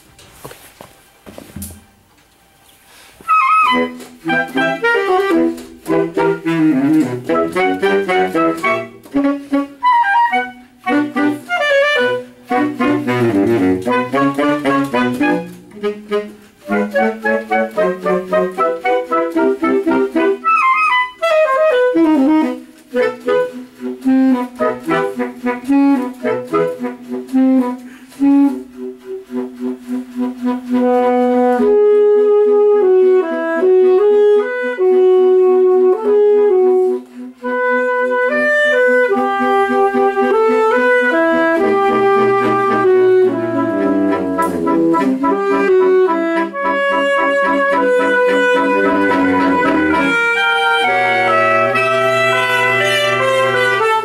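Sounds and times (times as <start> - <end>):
saxophone quintet playing: 2.6 - 54.0.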